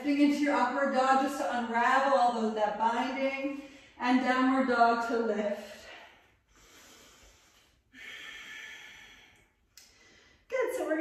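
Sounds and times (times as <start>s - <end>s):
person breathing: 5.6s - 10.5s.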